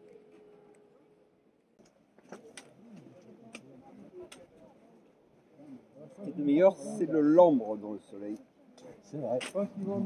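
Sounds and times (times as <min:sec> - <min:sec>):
faint low voices: 0:00.0 - 0:10.0.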